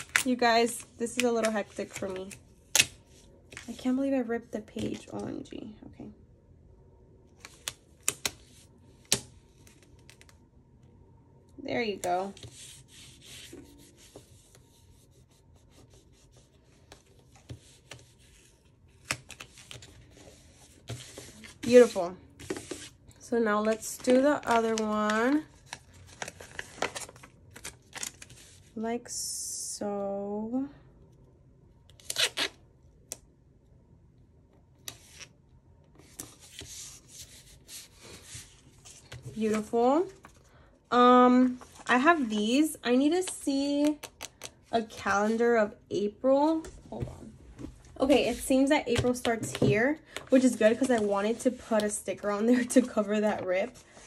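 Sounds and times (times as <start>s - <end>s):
paper rustling: 23.6s - 28.6s.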